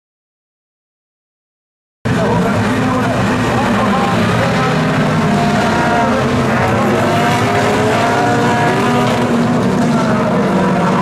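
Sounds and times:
race car engines revving: 0:02.1 - 0:11.0
voices: 0:02.1 - 0:11.0.

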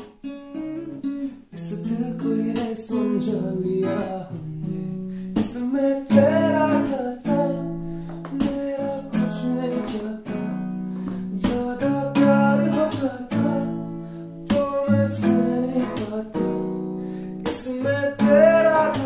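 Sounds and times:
acoustic guitar strummed: 0:00.0 - 0:19.0
man singing: 0:00.2 - 0:19.0.

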